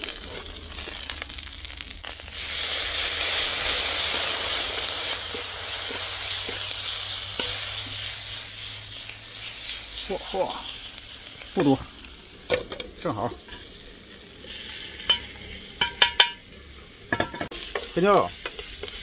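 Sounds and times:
peppers sizzling in a wok: 0.0 - 19.0
steel ladle tapping wok: 15.1 - 16.4.

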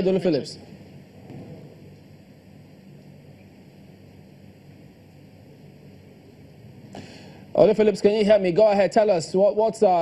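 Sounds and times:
low hum: 0.0 - 10.0.

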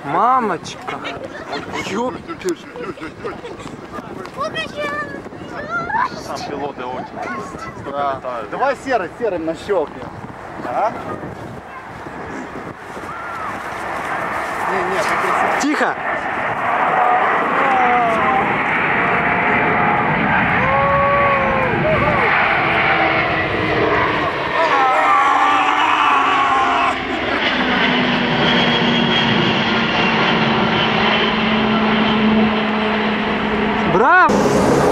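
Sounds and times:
jet engines flying overhead: 0.0 - 34.9
people shouting and whooping: 20.5 - 22.6, 24.5 - 27.3.

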